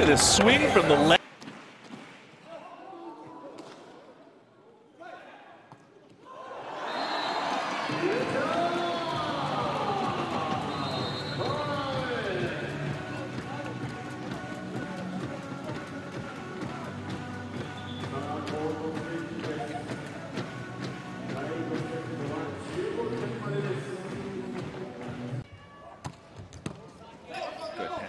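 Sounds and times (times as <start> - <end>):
crowd: 0.0 - 28.0
players yelling: 6.3 - 13.3
music over loudspeakers: 7.9 - 25.4.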